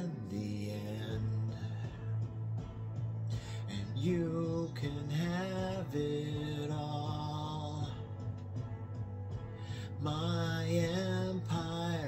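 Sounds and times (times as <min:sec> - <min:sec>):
man singing a long note: 0:00.0 - 0:02.0, 0:03.7 - 0:08.1, 0:10.0 - 0:12.0.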